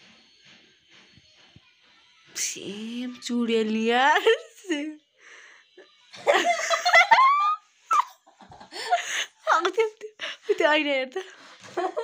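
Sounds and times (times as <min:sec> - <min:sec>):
woman laughing hard: 0:06.3 - 0:09.6, 0:11.6 - 0:12.0.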